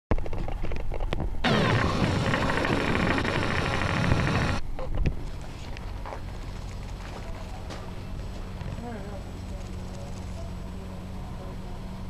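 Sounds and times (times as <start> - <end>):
camera zoom motor running: 1.4 - 4.6.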